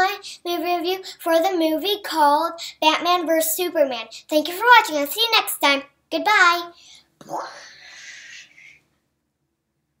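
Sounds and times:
child's breathy hiss: 6.7 - 8.8.

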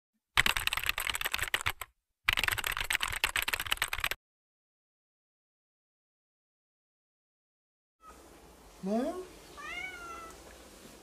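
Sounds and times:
keyboard typing clicks: 0.4 - 4.2.

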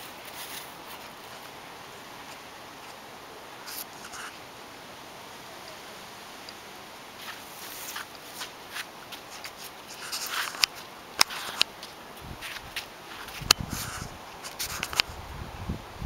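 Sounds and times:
light rustling: 0.0 - 3.0, 7.2 - 15.2.

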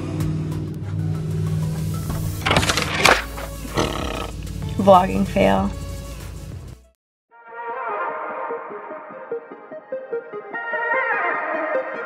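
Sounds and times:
background music: 0.0 - 12.0
person groaning: 3.7 - 4.4.

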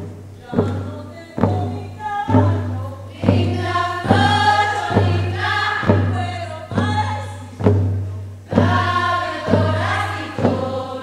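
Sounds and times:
frame drum slow beat: 0.0 - 11.0
women's choir singing: 0.4 - 7.6, 8.5 - 11.0.

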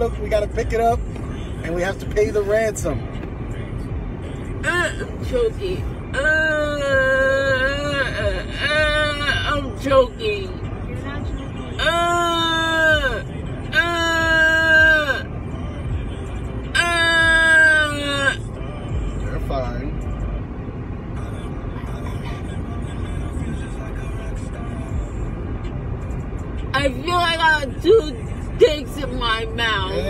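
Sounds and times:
road rumble inside moving car: 0.0 - 30.0
woman moaning: 6.1 - 9.6, 11.8 - 15.3, 16.8 - 18.4.

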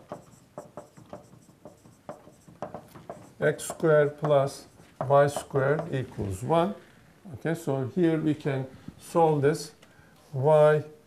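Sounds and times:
marker writing on a whiteboard: 0.0 - 6.1.

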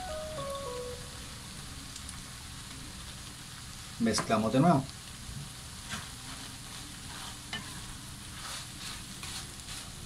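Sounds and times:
soft descending music notes: 0.0 - 1.4
filling sizzling in frying pan: 0.0 - 10.0.

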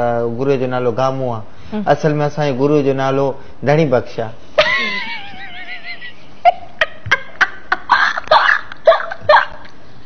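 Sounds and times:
woman laughing hard: 4.6 - 9.6.

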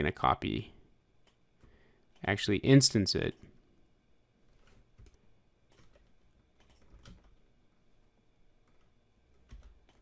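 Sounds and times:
keyboard and mouse clicks: 1.2 - 2.3, 4.5 - 7.4, 8.6 - 10.0.

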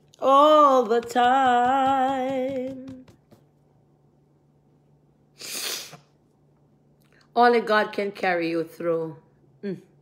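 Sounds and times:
faint steady hum: 0.0 - 10.0
woman blowing puff of breath: 5.4 - 6.1.

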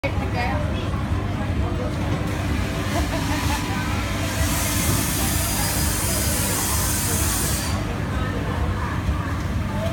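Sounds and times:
low chatter: 0.0 - 9.9.

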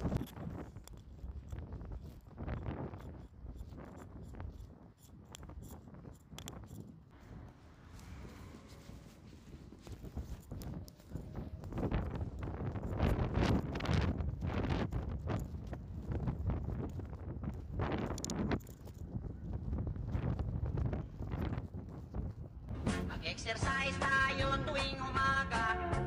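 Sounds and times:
wind rumbling on microphone: 0.0 - 25.4
footsteps on path and grass: 6.7 - 22.7.

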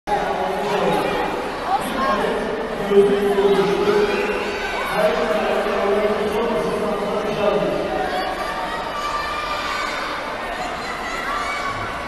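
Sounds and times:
crowd chatter: 0.1 - 12.0.

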